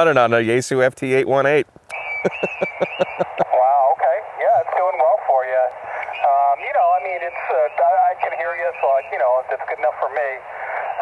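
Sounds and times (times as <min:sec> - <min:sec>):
narrow-band radio speech: 0:01.1 - 0:11.0.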